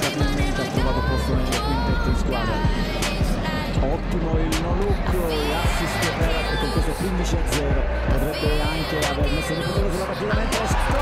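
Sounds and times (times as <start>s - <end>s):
drum beat: 0.0s - 11.0s
person singing: 0.0s - 11.0s.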